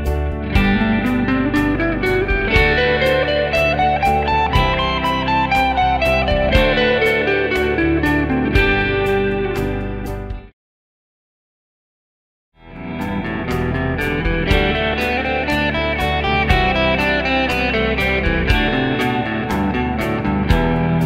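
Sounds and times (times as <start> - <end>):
electric guitar scale runs: 0.0 - 9.8, 12.7 - 21.0
backing track with steady beat: 0.0 - 10.5, 12.8 - 21.0.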